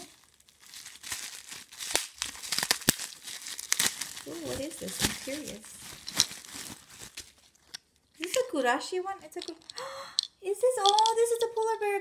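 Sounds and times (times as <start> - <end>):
bubble wrap crinkling: 0.0 - 8.5, 9.2 - 11.1.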